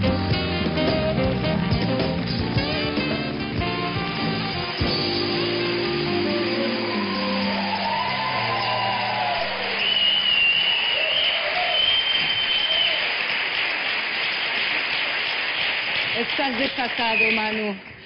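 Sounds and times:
house band music: 0.0s - 10.4s
audience applauding and cheering: 0.0s - 18.0s
long high whistle: 4.1s - 13.1s.

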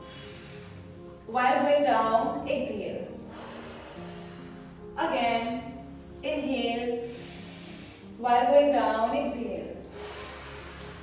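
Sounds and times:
person breathing out: 0.0s - 1.0s, 7.0s - 8.2s, 10.0s - 11.0s
soft background music: 0.0s - 11.0s.

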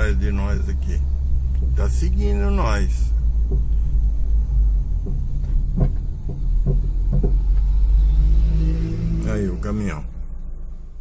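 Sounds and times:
car rumbling on unpaved road: 0.0s - 11.0s
faint knocks: 3.2s - 4.2s, 4.9s - 7.8s.

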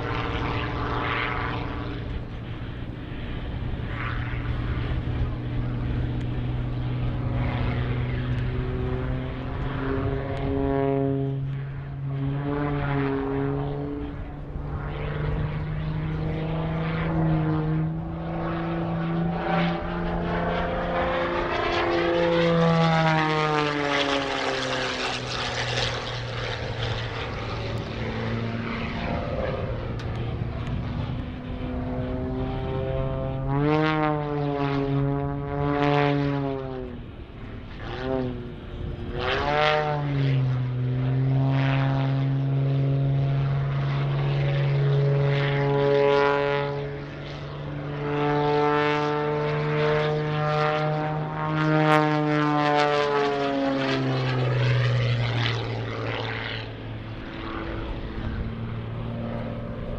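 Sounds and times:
airplane engine and propeller: 0.0s - 59.9s.

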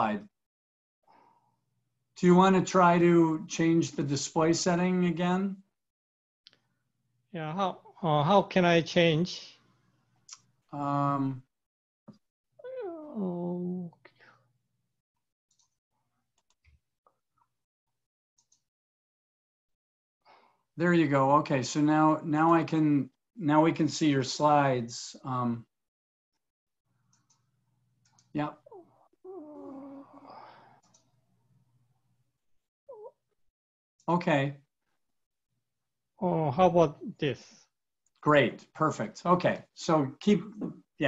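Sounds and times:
computer mouse clicks: 27.1s - 28.3s.

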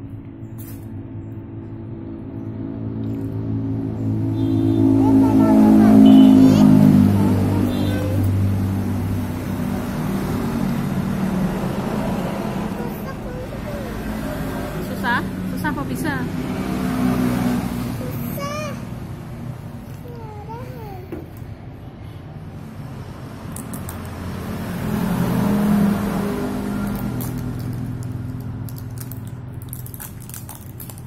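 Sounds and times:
vehicle engine running: 0.0s - 20.1s, 21.7s - 30.0s.

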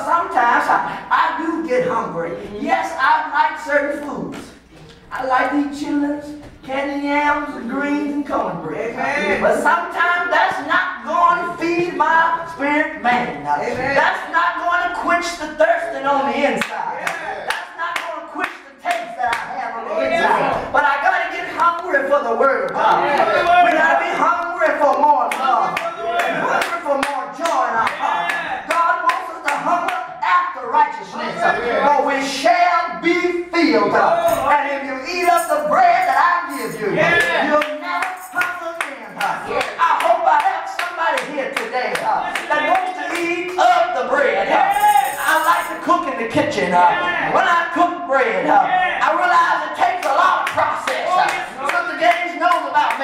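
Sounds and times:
man preaching: 0.0s - 53.0s
hands clapping: 16.6s - 19.5s, 22.6s - 30.1s, 35.2s - 43.8s, 49.8s - 53.0s.

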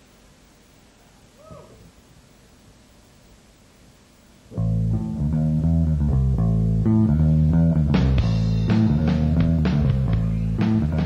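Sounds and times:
bass guitar and guitar low notes: 4.5s - 11.0s
rock band playing live: 7.0s - 11.0s.

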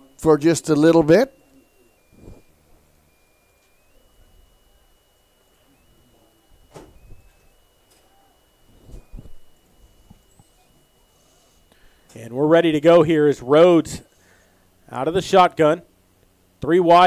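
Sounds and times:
high-pitched whine: 0.0s - 15.9s.

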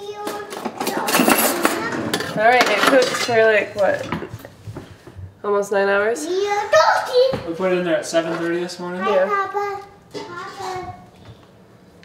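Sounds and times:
utensils and dishes clattering: 0.0s - 4.5s.

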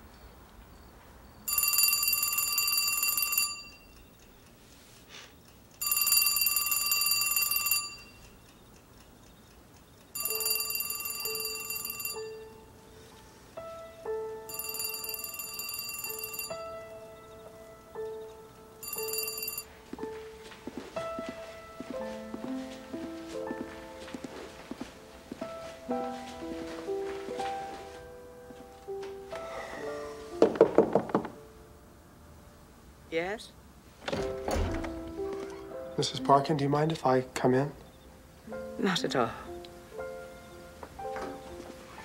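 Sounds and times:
telephone ringing in trilling bursts: 1.5s - 3.9s, 5.8s - 8.2s, 10.2s - 12.5s, 14.5s - 16.7s, 18.8s - 19.7s
soft background music: 5.9s - 42.0s.

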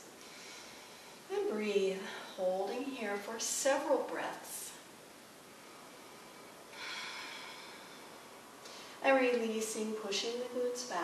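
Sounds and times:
woman breathing: 0.1s - 1.3s, 5.5s - 9.0s.

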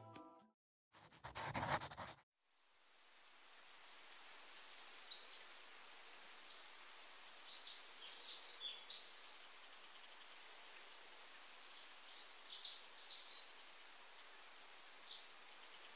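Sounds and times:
soft hiss: 2.5s - 15.9s
small birds chirping: 3.6s - 15.9s.

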